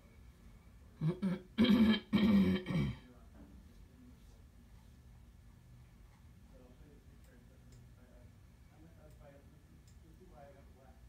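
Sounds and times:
person clearing throat: 0:01.0 - 0:03.1.

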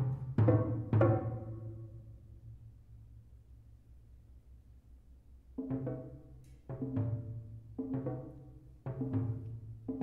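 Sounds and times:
drums struck with mallets: 0:00.0 - 0:01.7, 0:05.6 - 0:10.0.

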